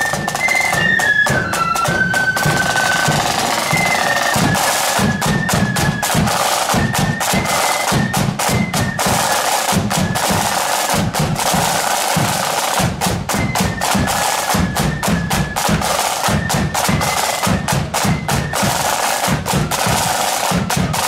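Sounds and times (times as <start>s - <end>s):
flute: 0.0s - 21.0s
side drums playing rolls: 0.0s - 21.0s.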